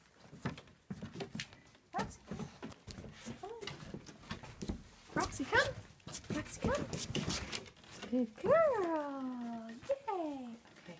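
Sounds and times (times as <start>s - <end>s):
footsteps on wooden boards: 0.0s - 8.8s.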